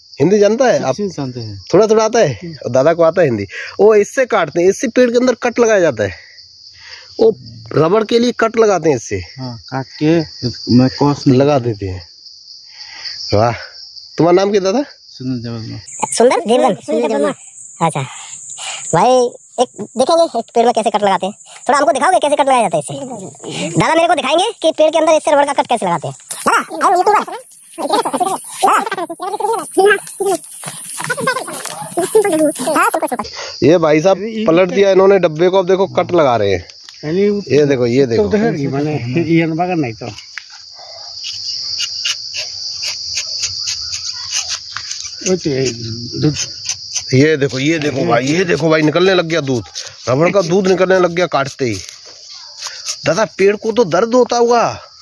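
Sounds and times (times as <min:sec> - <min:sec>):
insects droning: 0:00.0 - 0:55.0
man's voice: 0:33.6 - 0:40.1, 0:47.2 - 0:51.8
knife scraping tree bark: 0:41.2 - 0:53.5.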